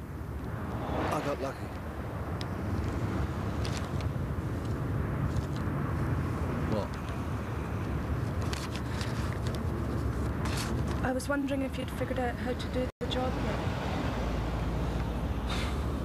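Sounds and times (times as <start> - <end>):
faint clicks and rustles: 7.8 - 11.2.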